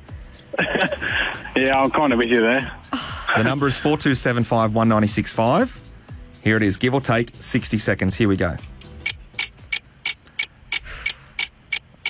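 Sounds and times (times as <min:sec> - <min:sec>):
clock ticking: 0:09.0 - 0:12.0.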